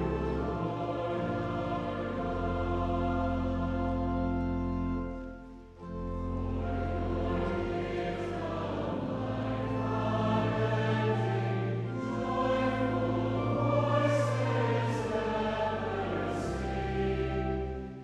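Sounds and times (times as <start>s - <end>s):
choir singing a hymn: 0.0s - 18.0s
pipe organ bass notes: 0.0s - 18.0s.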